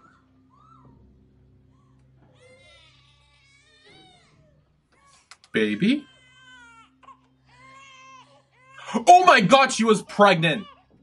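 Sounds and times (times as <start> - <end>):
newborn baby crying: 1.7 - 9.3.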